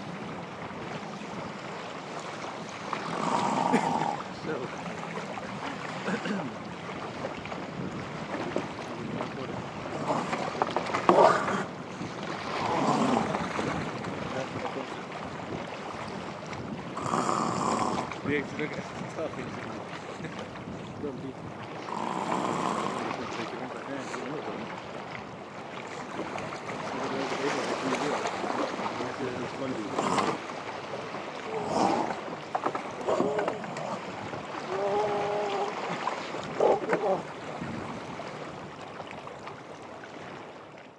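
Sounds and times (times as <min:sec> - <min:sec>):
wind buffeting microphone: 0:00.0 - 0:39.0
faint surf: 0:00.0 - 0:40.9
open sea wash: 0:00.0 - 0:40.9.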